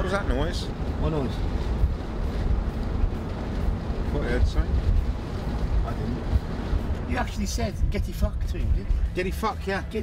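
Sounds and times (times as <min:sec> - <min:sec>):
car road and engine rumble: 0:00.0 - 0:10.0.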